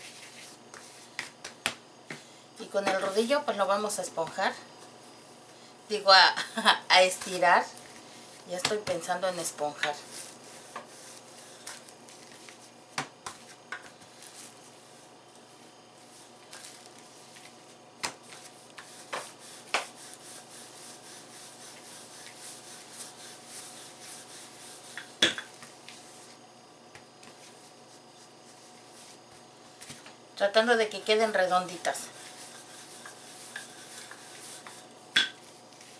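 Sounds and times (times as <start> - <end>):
rolling pin rubbing on dough: 7.1 - 26.4, 30.9 - 35.9.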